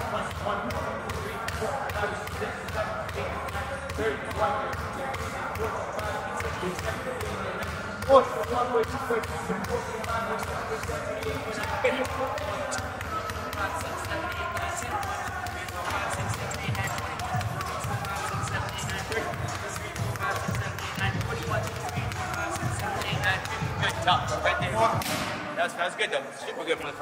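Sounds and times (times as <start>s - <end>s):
background music: 0.0s - 27.0s
basketball bouncing on hardwood: 8.0s - 25.0s.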